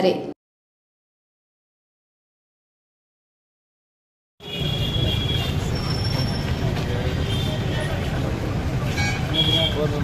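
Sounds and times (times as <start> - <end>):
idling vehicles and traffic rumble: 4.4 - 10.0.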